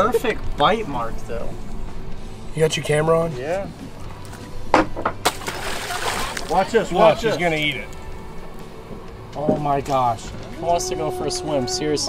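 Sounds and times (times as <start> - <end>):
carcass slapping water: 5.2 - 8.0
water splash: 5.2 - 8.1.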